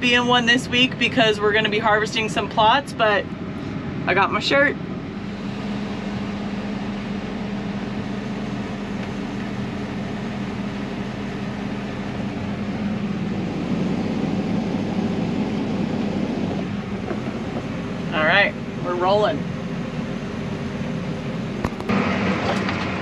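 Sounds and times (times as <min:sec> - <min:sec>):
tractor engine: 0:00.0 - 0:23.0.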